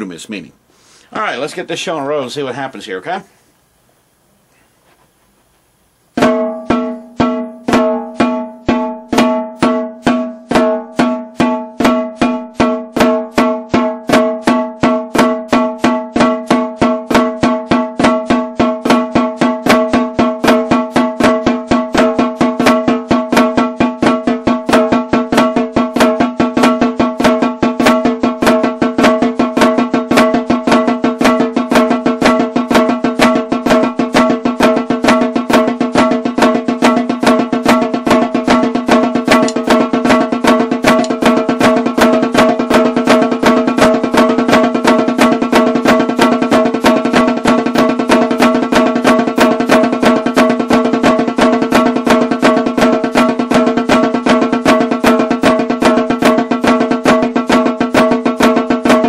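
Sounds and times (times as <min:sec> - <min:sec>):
snare drum flams: 0:06.2 - 0:59.0.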